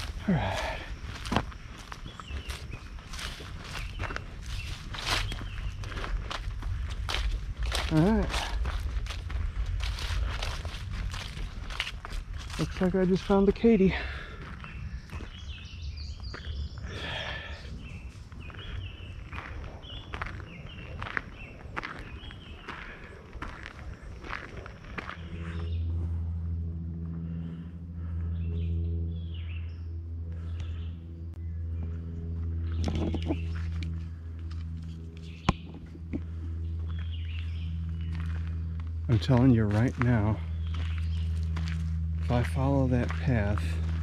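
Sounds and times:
footsteps crunching on gravel: 0.0s - 28.7s, 31.7s - 44.0s
steady low engine hum: 0.0s - 44.0s
bird chirps: 1.6s - 6.1s, 14.5s - 22.9s, 24.3s - 34.2s, 34.9s - 44.0s.

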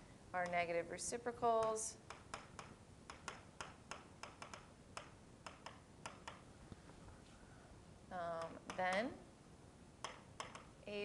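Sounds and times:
stylus tapping on whiteboard: 1.6s - 6.4s, 8.4s - 9.1s, 10.0s - 10.7s.

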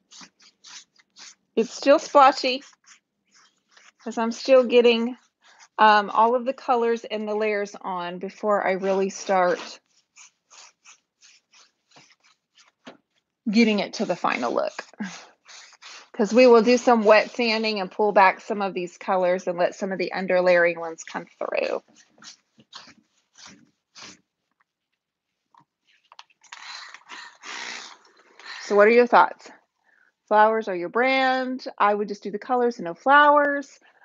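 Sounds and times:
paintbrush swishing on wood: 0.0s - 6.2s, 8.7s - 12.8s, 13.6s - 18.2s
spray bottle misting: 13.8s - 17.8s.

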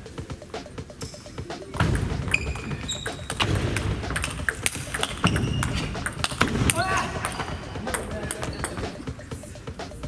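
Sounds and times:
table tennis ball knocking: 1.8s - 9.0s.

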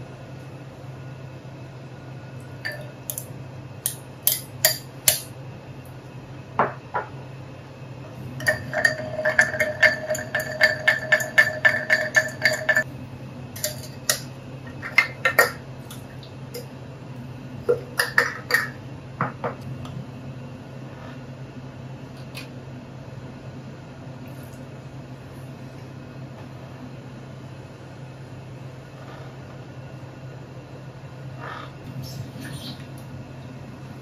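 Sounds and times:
ceramic cups clinking: 2.7s - 3.0s, 8.4s - 12.8s, 13.6s - 15.6s, 17.7s - 18.8s.

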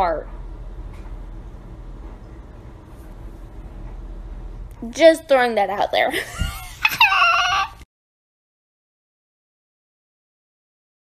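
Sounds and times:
young woman laughing: 6.1s - 7.8s.

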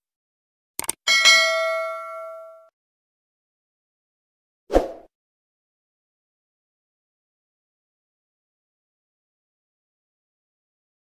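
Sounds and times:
bright bell ding: 1.1s - 2.7s.

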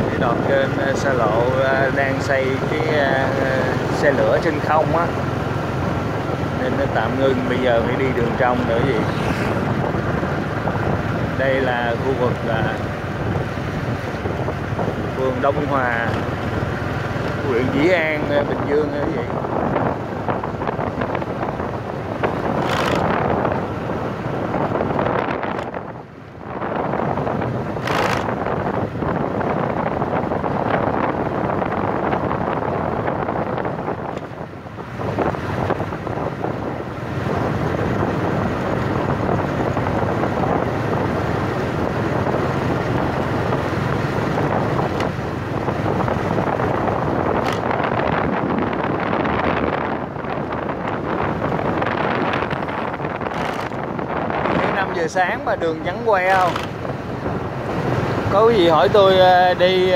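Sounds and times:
road noise: 0.0s - 59.9s
wind rushing over microphone: 0.0s - 59.9s.

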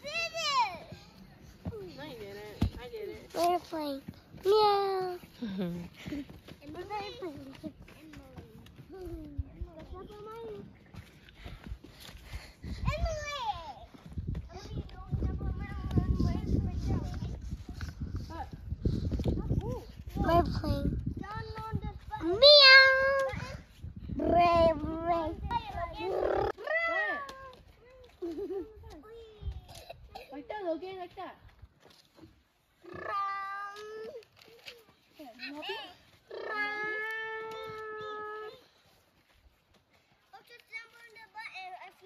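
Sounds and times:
young children talking: 0.0s - 10.9s, 12.7s - 17.4s, 19.4s - 31.0s, 32.8s - 38.8s
footsteps on dry dirt: 0.4s - 22.4s, 37.2s - 41.9s
child imitating cat meow: 36.3s - 38.6s.

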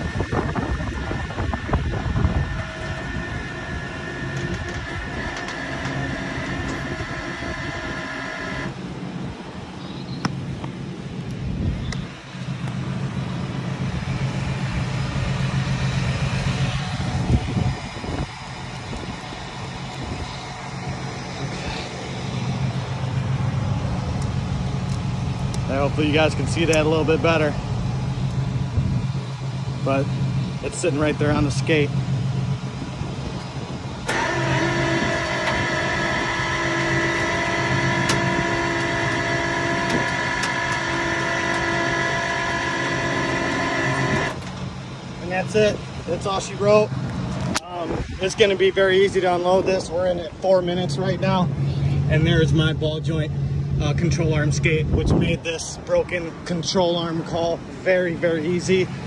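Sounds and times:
heavy rumbling and clanking: 0.0s - 8.8s, 10.4s - 59.0s
winch whining: 0.0s - 8.8s, 33.3s - 45.6s
truck engine hum: 0.0s - 59.0s.

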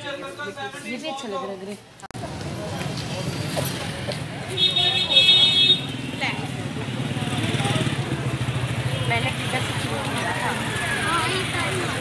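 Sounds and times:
street traffic: 0.0s - 12.0s
voices of passers-by: 0.0s - 12.0s
vehicle horn: 4.6s - 5.9s
motorcycle engine running: 5.9s - 12.0s.

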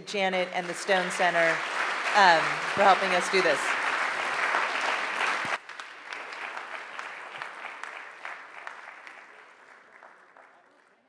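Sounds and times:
audience applause: 0.3s - 11.0s.

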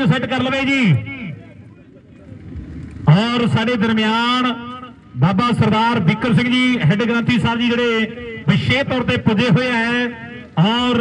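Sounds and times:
man talking: 0.0s - 1.6s, 3.0s - 11.0s
low outdoor background rumble: 0.0s - 11.0s.

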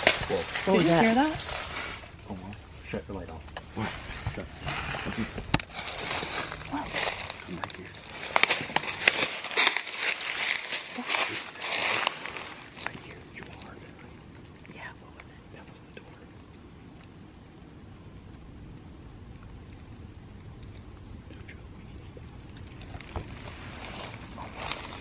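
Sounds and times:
low background rumble: 0.0s - 25.0s
rustling: 0.0s - 25.0s
hushed whispering: 10.0s - 16.5s, 21.1s - 23.1s, 23.8s - 25.0s.

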